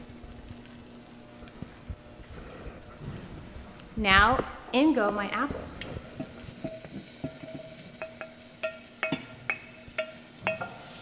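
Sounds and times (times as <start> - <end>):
butter sizzling faintly: 0.0 - 11.0
spoon clinking on plate and pan: 6.2 - 11.0.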